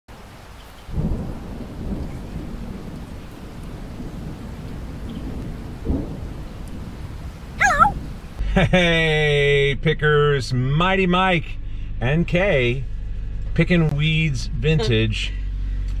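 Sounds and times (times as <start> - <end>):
steady rain: 0.1 - 8.8
thunder rolling: 0.9 - 8.4.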